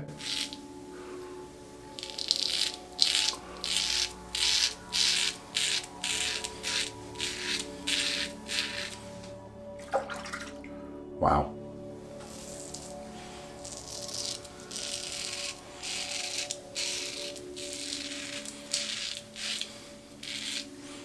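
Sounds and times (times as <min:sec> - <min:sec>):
razor scraping beard stubble: 0:00.0 - 0:00.7, 0:01.8 - 0:09.3, 0:12.2 - 0:21.0.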